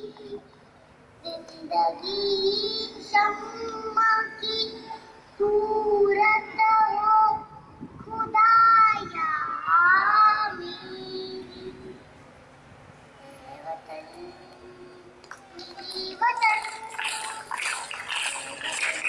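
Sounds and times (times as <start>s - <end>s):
girl singing into microphone: 1.2s - 12.0s, 13.2s - 17.6s.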